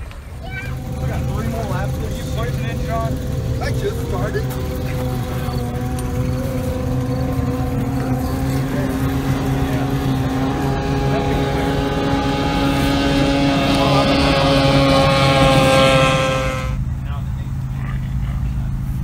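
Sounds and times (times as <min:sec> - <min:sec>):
racing outboard engine: 0:00.0 - 0:19.0.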